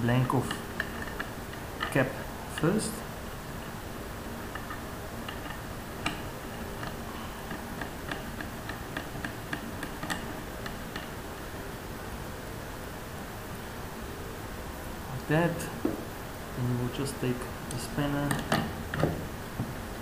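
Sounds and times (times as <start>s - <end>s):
steady hiss: 0.0s - 20.0s
metal cap ticking and clicking: 4.5s - 11.2s.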